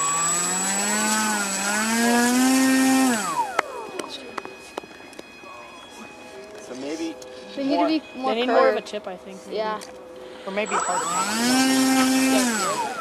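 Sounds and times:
electric motor and propeller whine: 0:00.0 - 0:13.0.

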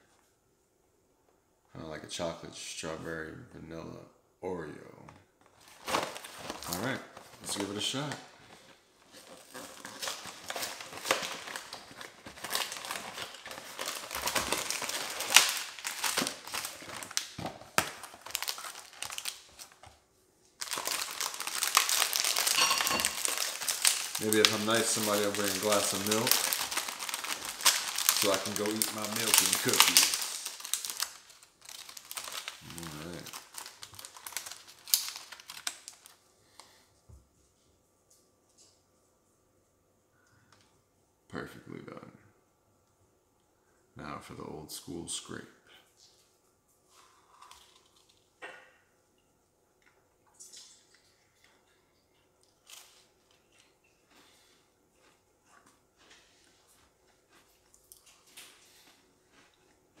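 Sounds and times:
plastic wrapper crinkling: 0:05.4 - 0:20.0, 0:20.6 - 0:36.8.

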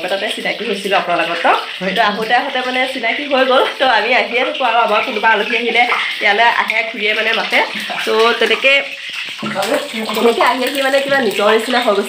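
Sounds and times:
woman talking animatedly: 0:00.0 - 0:12.0.

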